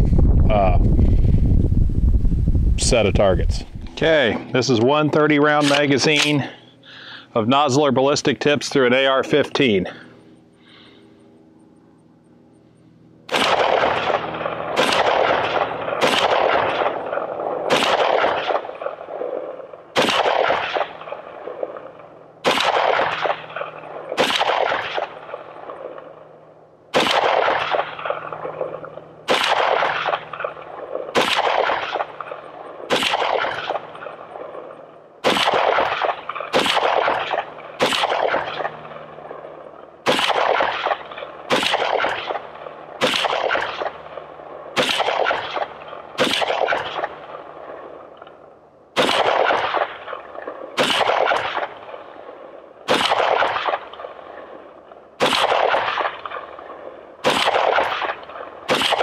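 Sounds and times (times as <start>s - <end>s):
rifle shots echoing: 4.0s - 6.6s, 13.3s - 59.0s.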